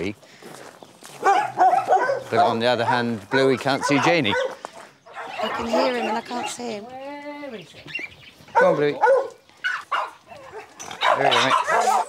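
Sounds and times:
dog barking in high-pitched yaps: 0:01.2 - 0:04.5, 0:05.1 - 0:06.1, 0:08.6 - 0:12.0.

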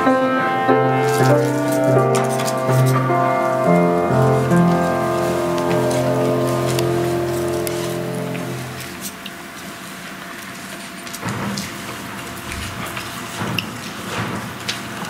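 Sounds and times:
keyboard music: 0:00.0 - 0:09.1
soft rustling: 0:00.9 - 0:15.0.

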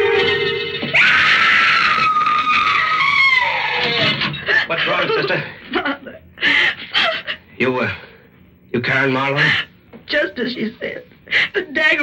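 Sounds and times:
woman screaming: 0:00.9 - 0:04.0.

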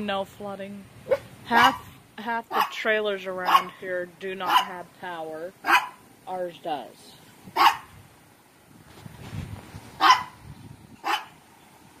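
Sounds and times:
dog barking: 0:01.1 - 0:01.9, 0:02.5 - 0:02.8, 0:03.4 - 0:03.7, 0:04.4 - 0:04.8, 0:05.6 - 0:06.0, 0:07.6 - 0:07.9, 0:10.0 - 0:10.4, 0:11.0 - 0:11.4.

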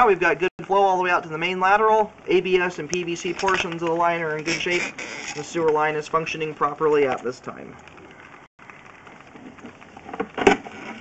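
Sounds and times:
cable scraping rustle: 0:02.6 - 0:11.0.

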